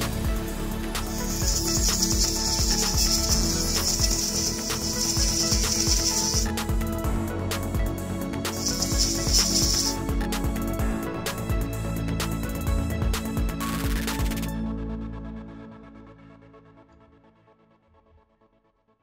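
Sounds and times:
electronic background music: 0.0s - 17.8s
rotary tool grinding metal: 1.0s - 6.8s, 8.5s - 10.0s.

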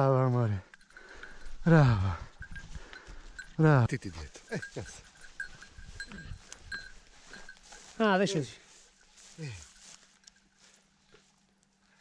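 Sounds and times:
faint rustles: 0.6s - 12.0s.

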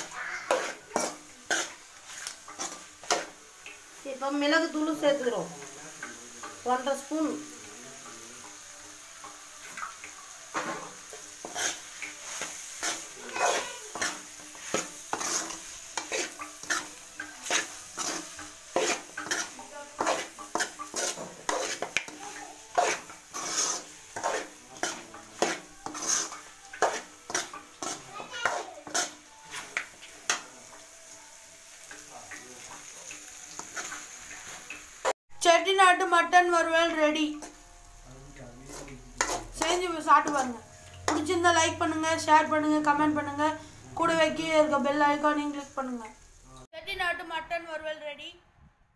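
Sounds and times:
spoon scraping a pan: 0.0s - 35.1s, 37.3s - 37.7s, 38.6s - 41.8s
frying sizzle: 0.0s - 48.2s.

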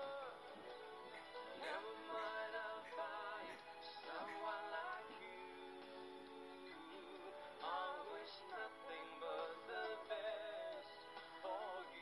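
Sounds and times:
held instrumental chords: 0.0s - 12.0s
person singing with vibrato: 0.0s - 12.0s.

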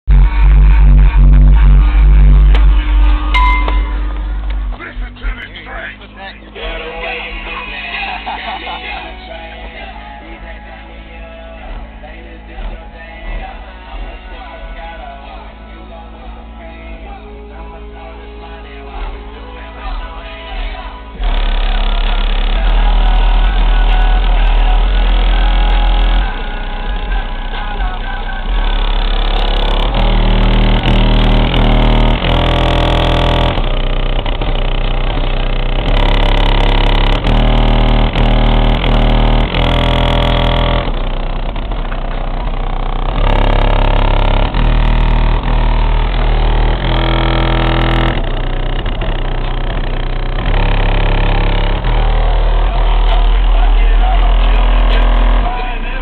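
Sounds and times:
heavy bass: 0.0s - 56.0s
music through car stereo: 0.0s - 56.0s.

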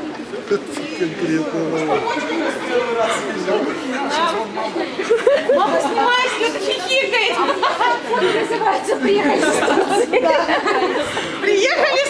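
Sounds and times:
indistinct voices talking in a hall: 0.0s - 12.0s.

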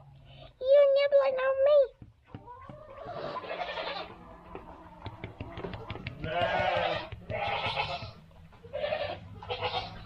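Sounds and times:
goat bleating: 3.1s - 4.1s, 6.2s - 10.0s.

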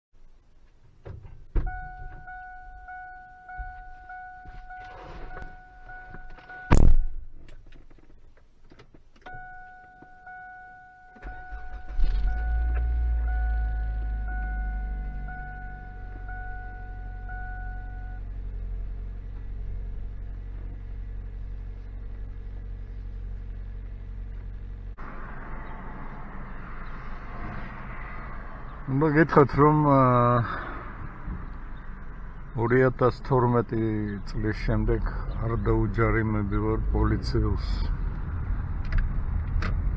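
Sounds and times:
car engine idling: 0.2s - 39.9s
car engine cranking: 0.9s - 25.8s
car warning chime pinging: 1.6s - 6.8s, 9.3s - 18.3s
car door slamming: 6.1s - 7.3s.

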